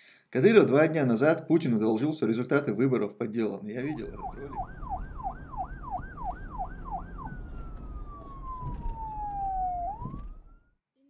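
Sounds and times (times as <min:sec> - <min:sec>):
low noisy rumble: 0:03.8 - 0:10.5
emergency siren: 0:03.9 - 0:10.8.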